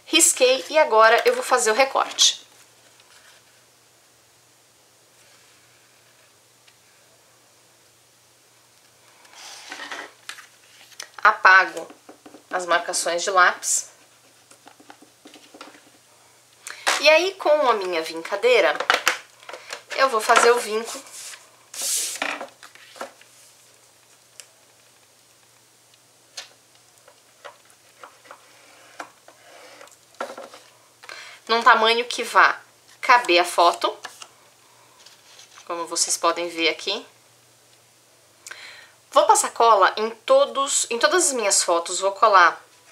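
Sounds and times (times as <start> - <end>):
paper sliding scrape: 9.3 - 11.0, 20.6 - 23.6.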